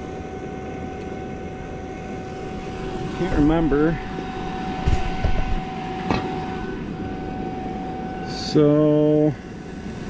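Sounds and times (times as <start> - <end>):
vacuum pump humming and whining: 0.0 - 10.0.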